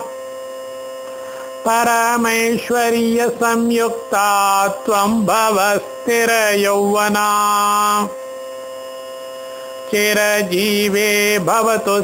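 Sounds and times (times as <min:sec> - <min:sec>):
steady hum of held tones: 0:00.0 - 0:12.0.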